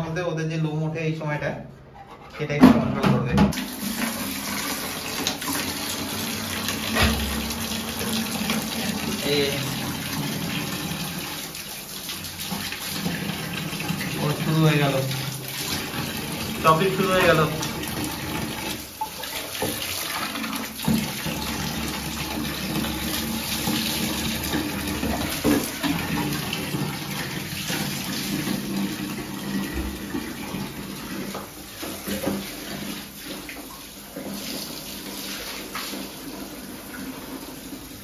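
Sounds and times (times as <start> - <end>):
tap running into bucket: 3.5 - 38.0
water splashes: 3.6 - 37.8.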